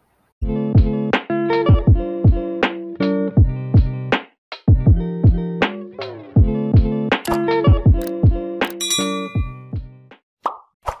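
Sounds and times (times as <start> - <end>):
short jingle with chords: 8.7 - 9.7.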